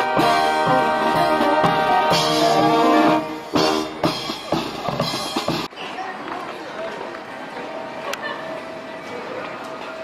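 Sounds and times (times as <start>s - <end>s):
marching brass band playing: 0.0s - 5.7s
faint voices: 4.0s - 10.0s.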